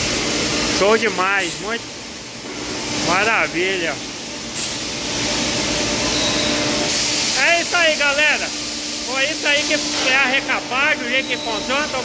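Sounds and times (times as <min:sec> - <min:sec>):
machinery hiss: 0:00.0 - 0:12.0.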